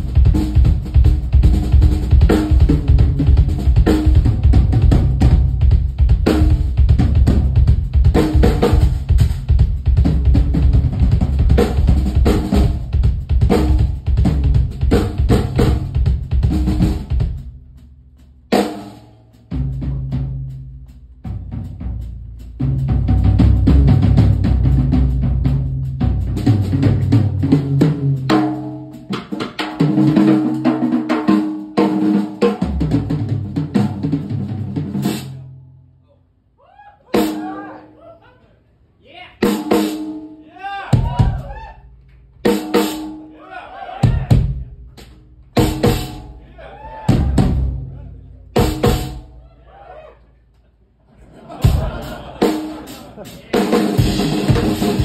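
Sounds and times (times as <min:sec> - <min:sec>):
drum solo: 0:00.0 - 0:35.6, 0:37.1 - 0:38.0, 0:39.4 - 0:49.5, 0:51.4 - 0:55.0.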